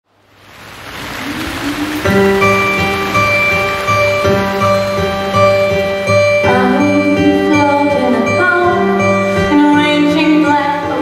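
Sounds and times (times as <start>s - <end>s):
rushing noise: 0.1s - 6.8s.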